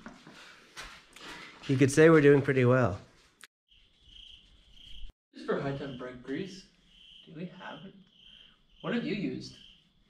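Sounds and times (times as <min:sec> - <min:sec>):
crickets chirping: 0:03.7 - 0:10.0.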